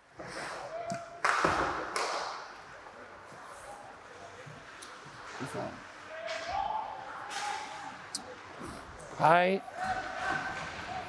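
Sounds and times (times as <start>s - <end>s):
crowd noise: 0.3s - 11.0s.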